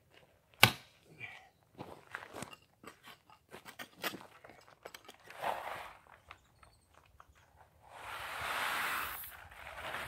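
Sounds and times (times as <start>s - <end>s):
shovel digging gravelly soil: 5.0s - 6.3s, 7.8s - 10.0s.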